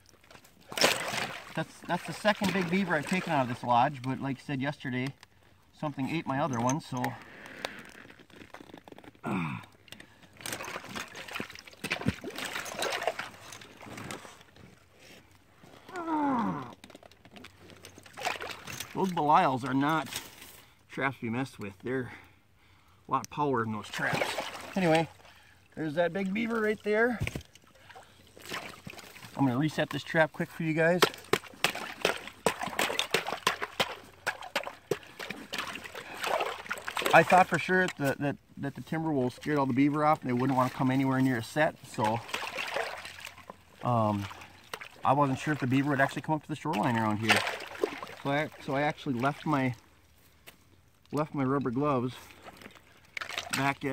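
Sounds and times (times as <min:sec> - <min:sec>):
water splashing and dripping: 0:00.0 - 0:04.2, 0:10.4 - 0:14.4, 0:17.8 - 0:19.5, 0:23.8 - 0:38.0, 0:39.2 - 0:49.8, 0:52.2 - 0:53.9.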